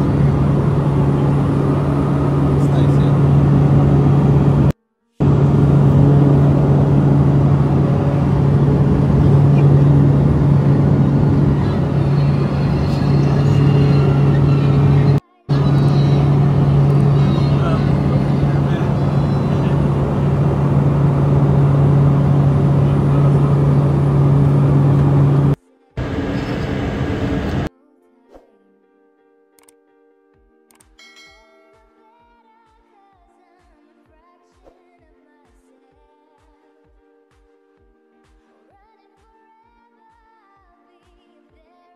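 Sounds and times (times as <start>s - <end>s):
engine drone in cabin: 0.0s - 27.7s.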